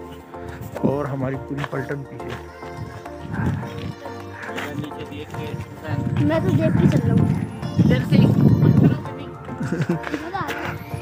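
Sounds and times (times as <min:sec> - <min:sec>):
music with sustained notes: 0:00.0 - 0:11.0.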